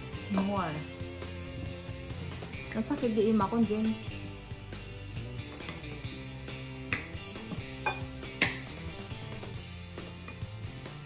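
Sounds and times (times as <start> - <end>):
background music: 0.0 - 11.0
spoon clinking metal bowl: 5.5 - 6.0, 7.8 - 8.6.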